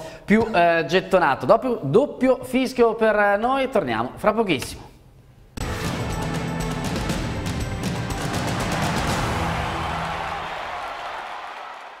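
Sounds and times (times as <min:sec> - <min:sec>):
percussive ident music: 0:05.6 - 0:10.8.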